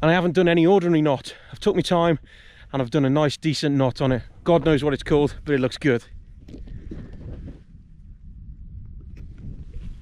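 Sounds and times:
wind buffeting microphone: 3.9 - 10.0.

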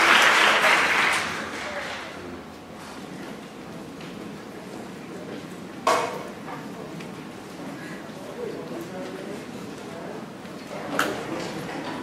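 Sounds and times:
murmur and shuffling of audience: 0.0 - 12.0.

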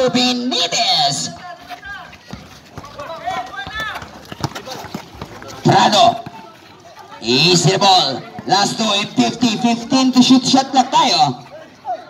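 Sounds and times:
faint shouting voices: 0.0 - 12.0
basketball dribbling on concrete: 1.2 - 6.4.

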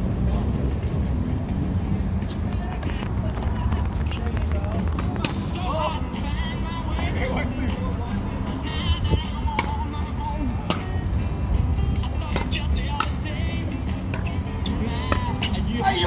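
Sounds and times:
steady low rumble: 0.0 - 15.8
background music with singing: 0.0 - 16.0.

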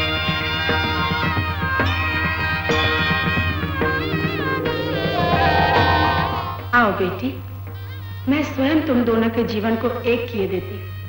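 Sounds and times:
low steady hum: 2.8 - 7.3.

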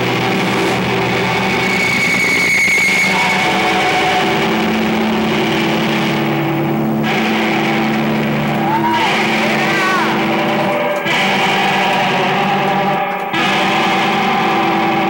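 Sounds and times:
distorted electric guitars: 0.0 - 15.0.

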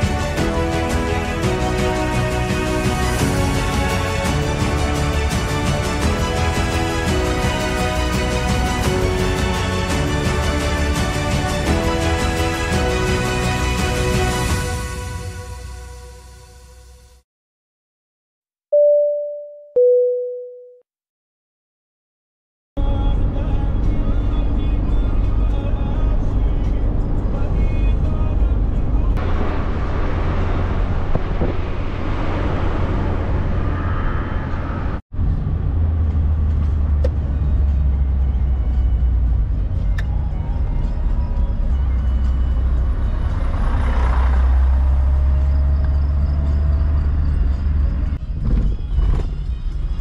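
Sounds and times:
background music: 0.0 - 17.1, 36.7 - 50.0
car road and engine rumble: 22.8 - 50.0.

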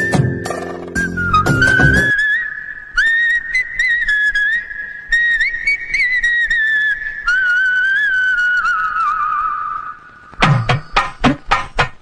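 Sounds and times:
person whistling a melody: 0.0 - 2.4.

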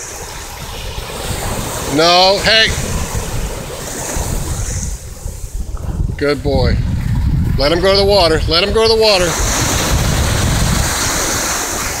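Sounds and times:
ocean surf washing up: 0.0 - 12.0
wind rumbling on microphone: 0.0 - 12.0.

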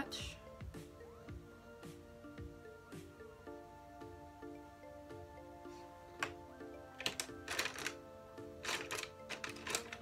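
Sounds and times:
gentle background music: 0.0 - 10.0
makeup brushes clicking and tapping: 6.2 - 8.0, 8.6 - 10.0.

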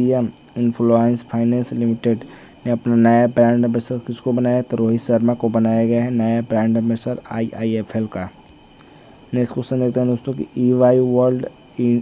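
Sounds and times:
man speaking: 0.0 - 8.4, 9.3 - 12.0
steady high-pitched tone: 0.0 - 12.0.

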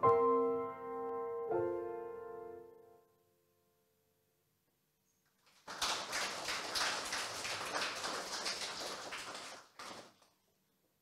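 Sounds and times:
audience applauding: 5.4 - 10.4.

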